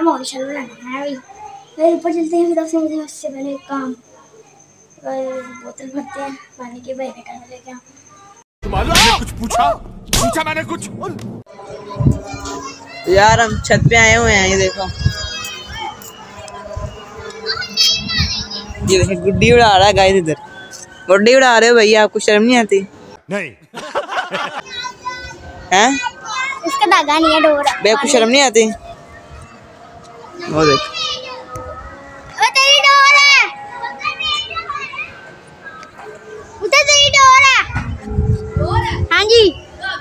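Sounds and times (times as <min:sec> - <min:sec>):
child's high-pitched call: 0:00.0 - 0:08.4, 0:11.6 - 0:19.5, 0:24.6 - 0:28.1, 0:28.7 - 0:40.0
children's voices: 0:00.0 - 0:08.4, 0:11.5 - 0:21.2, 0:24.2 - 0:40.0.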